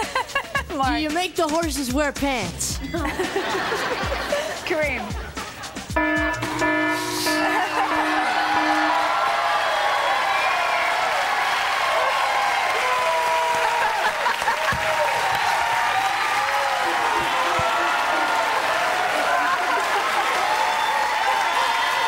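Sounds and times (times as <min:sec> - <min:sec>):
audience cheering and applauding: 0:05.4 - 0:22.0
electronic game show tones: 0:05.9 - 0:09.3.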